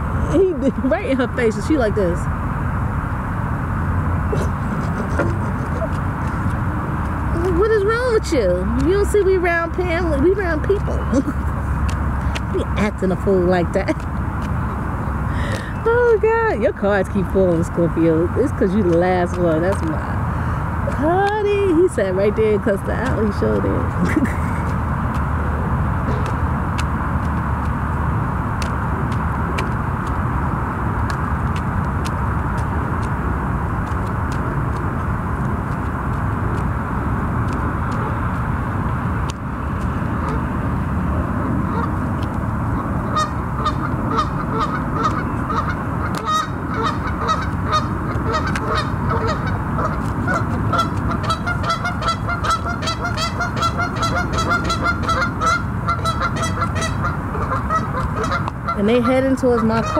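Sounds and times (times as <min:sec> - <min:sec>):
low rushing noise: 0:00.0 - 0:58.8
geese honking: 0:04.2 - 0:16.4, 0:39.9 - 0:59.9.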